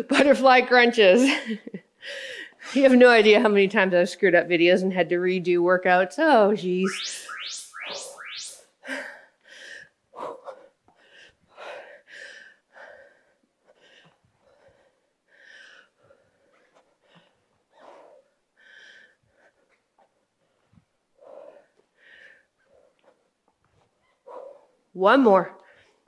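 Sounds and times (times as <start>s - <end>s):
woman breathing hard: 2.0s - 2.6s, 8.9s - 19.8s.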